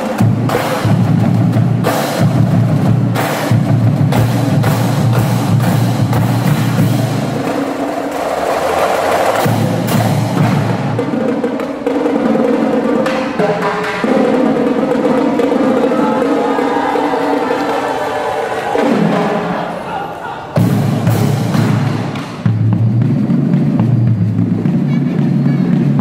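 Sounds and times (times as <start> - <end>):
snare drum strokes and rolls: 0.0 - 19.6, 20.6 - 26.0.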